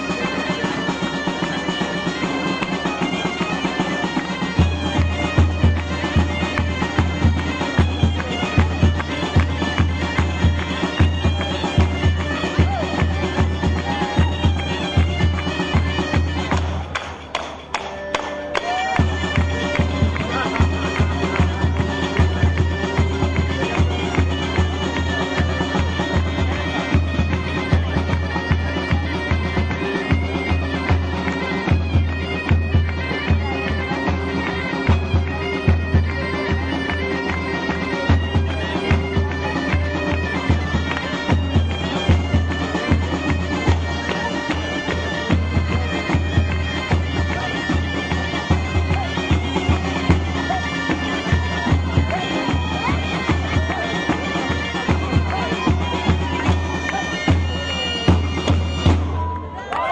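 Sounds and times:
bagpipe playing over drone: 0.0 - 16.9, 17.6 - 59.5
drum beating rhythmically: 0.0 - 59.9.

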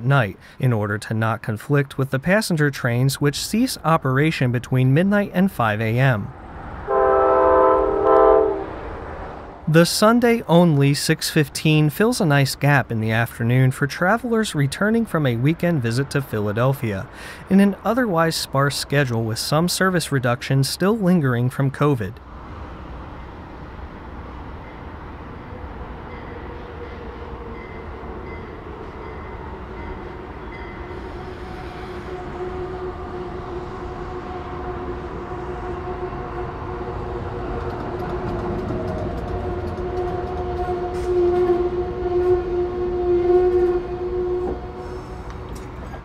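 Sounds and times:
passenger train rumbling with high whine: 1.2 - 46.0.

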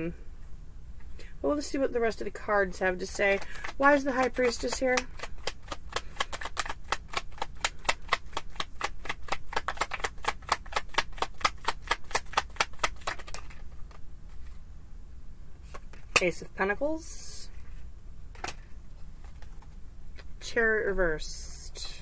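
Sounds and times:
cards being shuffled: 3.0 - 14.6, 15.6 - 16.2, 17.6 - 20.3.

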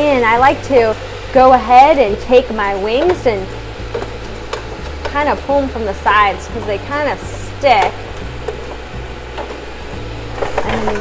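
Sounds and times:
steady low hum: 0.0 - 11.0
utensil scraping air fryer basket: 0.0 - 11.0.

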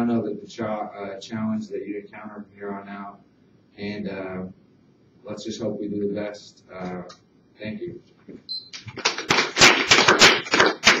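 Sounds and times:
group of people clapping: 8.8 - 11.0.

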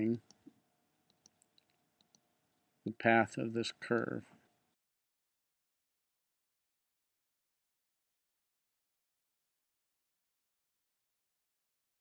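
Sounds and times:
computer mouse clicks: 1.1 - 2.3.

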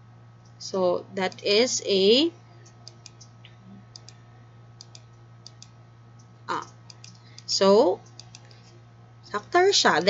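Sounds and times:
low steady hum: 0.0 - 10.0
faint computer mouse clicks: 3.9 - 4.2, 4.8 - 8.6.

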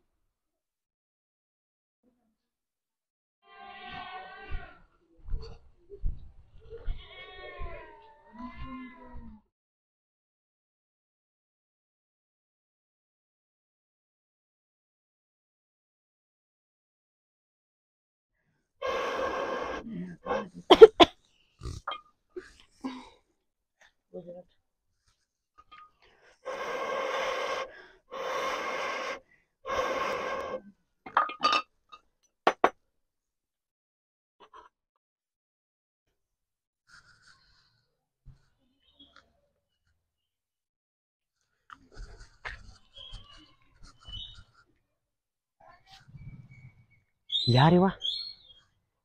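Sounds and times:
blowing through a blowpipe: 18.8 - 19.9, 26.4 - 30.6.

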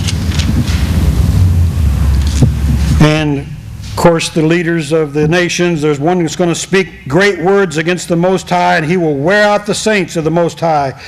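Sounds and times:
low microphone rumble: 0.0 - 8.2.

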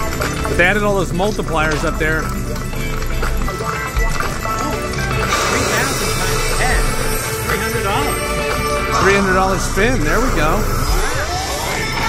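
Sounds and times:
rapid electronic ticking: 0.0 - 12.0
slot machine game music: 0.0 - 12.0.

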